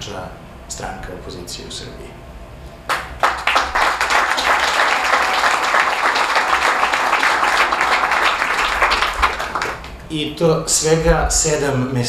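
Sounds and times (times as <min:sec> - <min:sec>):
audience applauding: 0:02.9 - 0:10.0.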